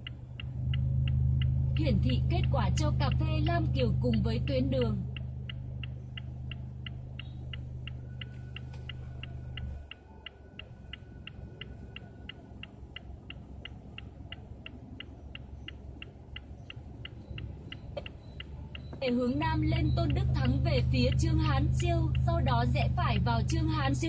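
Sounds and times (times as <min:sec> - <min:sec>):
car indicator relay ticking: 0:00.0 - 0:24.0
low steady hum: 0:00.0 - 0:24.0.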